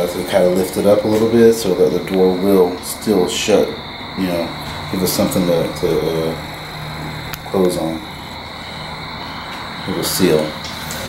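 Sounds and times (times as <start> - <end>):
constant high-pitched tone: 0.0 - 11.0
low hum: 0.0 - 11.0.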